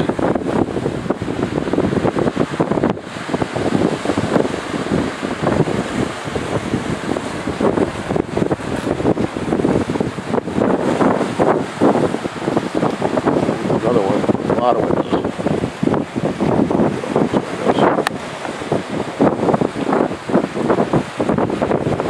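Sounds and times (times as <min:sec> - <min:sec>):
surf washing onto rocky shore: 0:00.0 - 0:22.0
wind buffeting microphone: 0:00.0 - 0:22.0.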